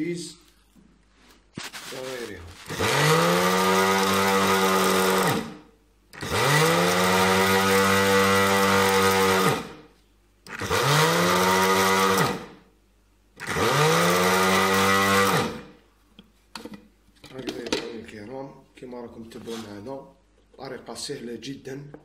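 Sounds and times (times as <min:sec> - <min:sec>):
electric grinder motor whining: 0:02.6 - 0:05.6, 0:06.2 - 0:09.7, 0:10.5 - 0:12.5, 0:13.4 - 0:15.6.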